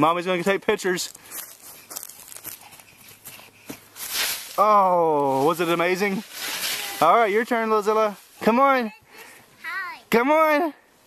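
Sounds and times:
footsteps on grass and leaves: 0:00.3 - 0:08.7.

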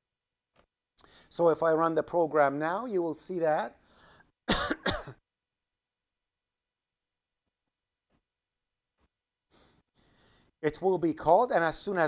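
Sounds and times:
man clearing his throat: 0:04.5 - 0:05.2.

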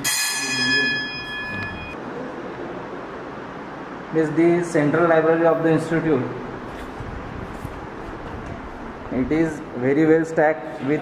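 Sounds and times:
bell-like chime ringing: 0:00.0 - 0:02.0.

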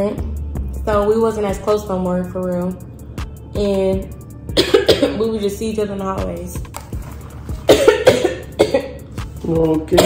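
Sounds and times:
woman coughing: 0:04.5 - 0:05.4, 0:07.6 - 0:09.1.

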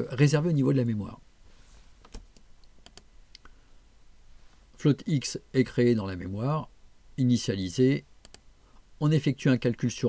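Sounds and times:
light computer clicks: 0:02.0 - 0:03.5, 0:08.2 - 0:08.4.

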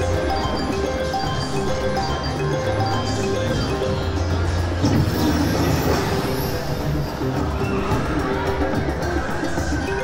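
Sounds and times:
slot machine game music: 0:00.0 - 0:07.5
slot machine sound effects: 0:00.0 - 0:07.5.

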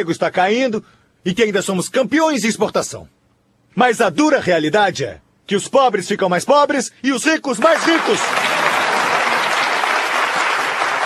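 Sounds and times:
large audience applauding: 0:07.6 - 0:11.0.

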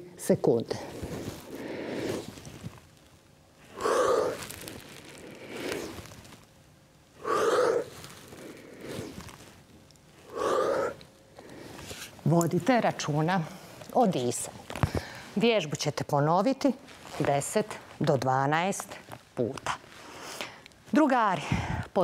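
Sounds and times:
woman breathing hard: 0:14.8 - 0:15.4.

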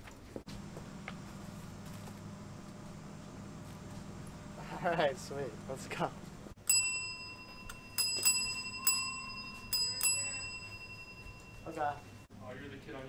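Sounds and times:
counter service bell ringing: 0:06.6 - 0:12.3.

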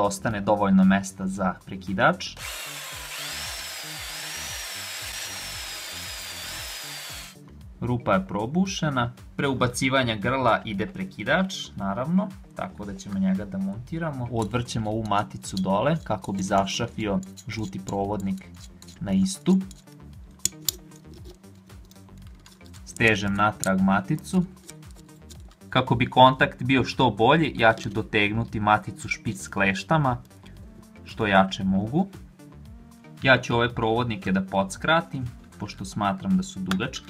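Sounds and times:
quiet background music: 0:00.0 - 0:37.0
electric drill boring through metal: 0:02.4 - 0:07.4
sharp metallic clicks: 0:19.6 - 0:21.1.

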